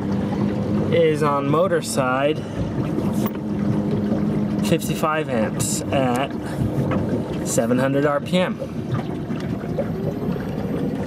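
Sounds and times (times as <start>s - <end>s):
water splashing along boat hull: 0.0s - 11.0s.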